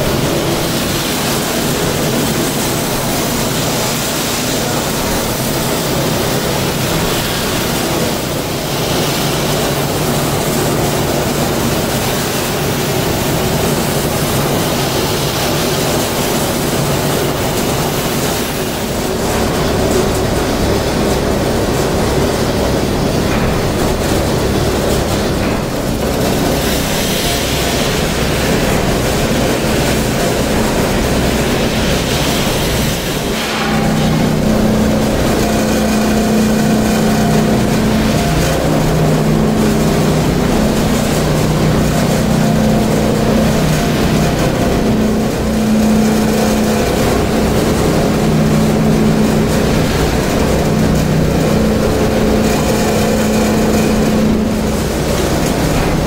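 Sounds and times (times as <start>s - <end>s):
polishing machine running: 0.0s - 56.0s
low hum shifting pitch: 17.3s - 56.0s.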